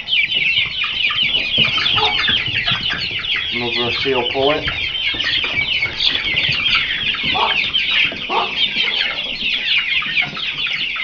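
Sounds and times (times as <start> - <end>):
chicks peeping and chirping: 0.0 - 11.0.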